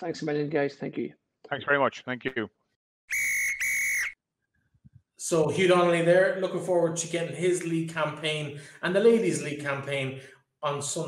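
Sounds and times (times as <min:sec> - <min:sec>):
whistle blasts: 0:03.1 - 0:04.2.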